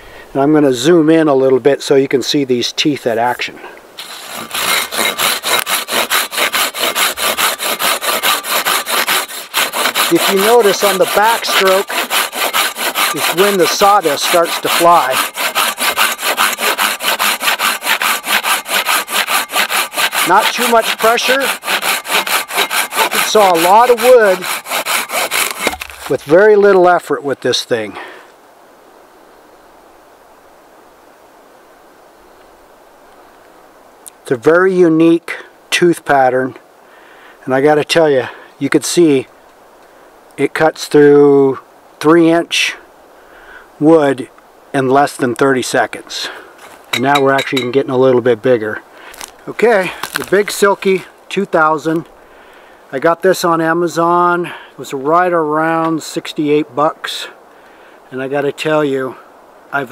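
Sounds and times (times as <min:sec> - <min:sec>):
steady background hiss: 0:00.0 - 0:59.9
hand saw cutting log: 0:04.0 - 0:26.4, 0:46.6 - 0:47.8, 0:49.1 - 0:51.1.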